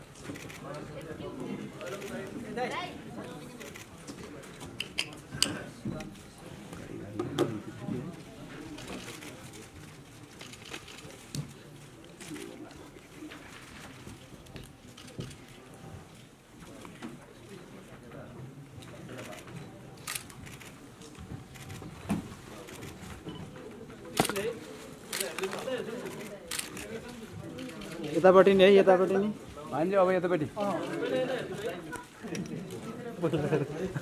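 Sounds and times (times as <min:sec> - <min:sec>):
murmur of voices: 0:00.0 - 0:34.0
people talking at once: 0:00.4 - 0:21.8, 0:22.5 - 0:34.0.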